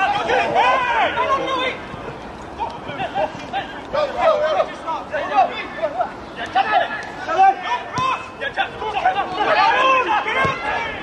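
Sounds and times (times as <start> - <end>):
players and onlookers shouting: 0.0 - 1.9, 2.5 - 11.0.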